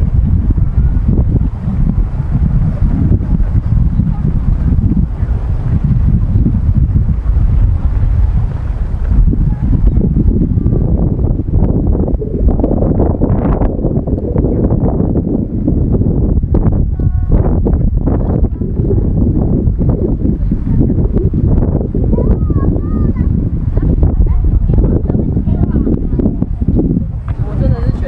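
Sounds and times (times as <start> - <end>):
faint voices: 0.0 - 12.7, 16.8 - 28.0
wind rumbling on microphone: 0.0 - 28.0.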